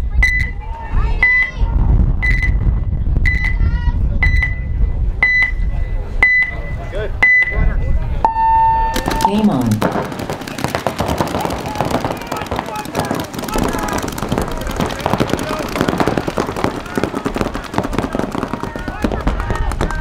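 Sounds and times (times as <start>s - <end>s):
short high timer beeps: 8.3s - 9.7s.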